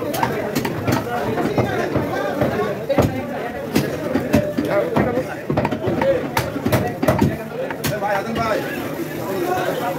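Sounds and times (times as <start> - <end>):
people chattering: 0.0 - 9.9.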